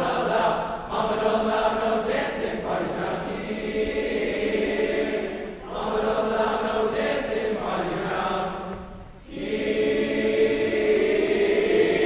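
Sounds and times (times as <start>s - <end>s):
large choir singing: 0.0s - 12.0s.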